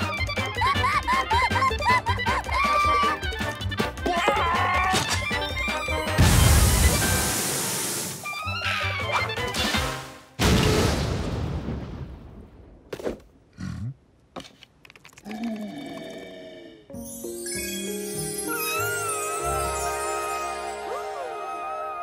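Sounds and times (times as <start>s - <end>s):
cartoon score music: 0.0s - 7.4s, 8.2s - 10.2s, 16.9s - 22.0s.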